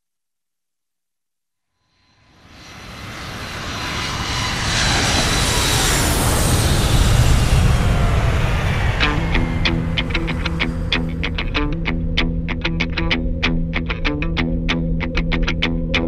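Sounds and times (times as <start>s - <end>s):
high jet engine whine: 2.0s - 15.8s
jet airliner roar overhead: 2.1s - 15.8s.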